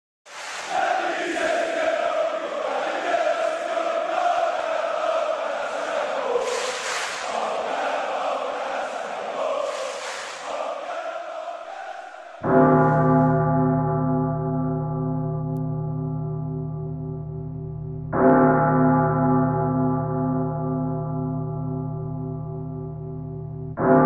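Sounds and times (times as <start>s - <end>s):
crowd chanting in unison: 0.3s - 13.1s.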